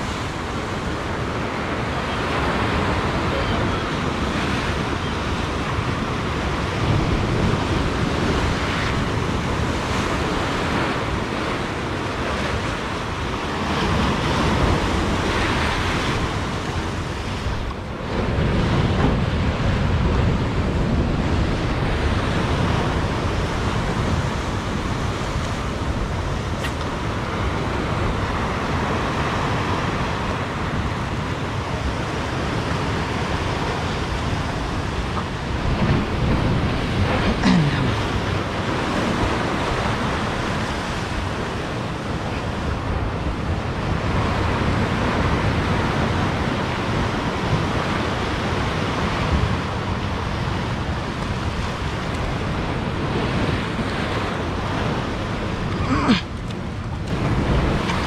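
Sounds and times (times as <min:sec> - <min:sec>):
surf breaking over rocks: 0:00.0 - 0:58.0
wind buffeting microphone: 0:00.0 - 0:58.0.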